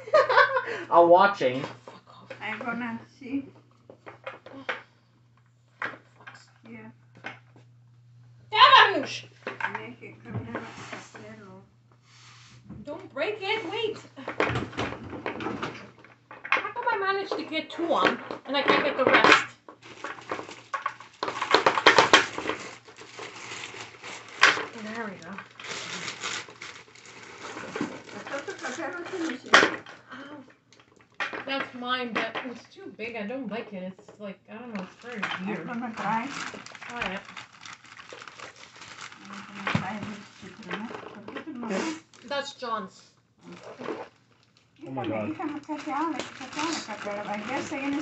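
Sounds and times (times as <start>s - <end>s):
plastic chair parts rustling: 12.2s - 30.0s, 34.8s - 42.5s, 45.4s - 48.0s
plastic chair parts knocking: 14.3s - 22.7s
person speaking: 44.8s - 48.0s.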